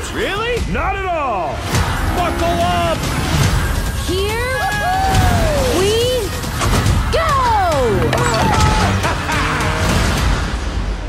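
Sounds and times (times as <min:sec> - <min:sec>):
go-kart engines running: 0:01.6 - 0:10.4.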